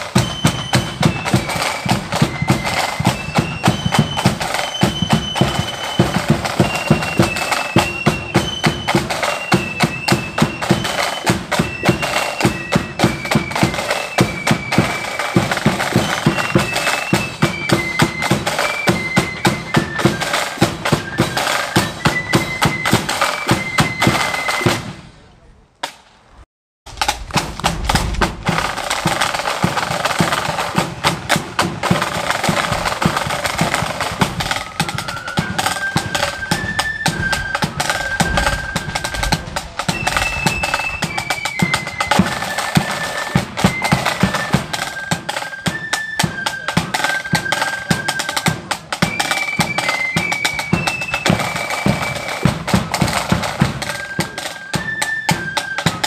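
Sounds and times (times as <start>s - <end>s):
flutes playing high melody: 0.0s - 25.0s, 28.4s - 56.0s
marching drums: 0.0s - 25.2s, 26.9s - 56.0s.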